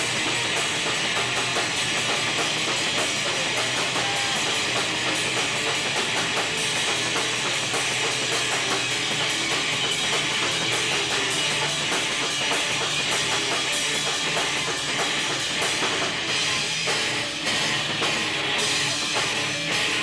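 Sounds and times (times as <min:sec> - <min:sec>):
cymbals struck in fast beat: 0:00.0 - 0:20.0
rock band playing live: 0:00.0 - 0:20.0.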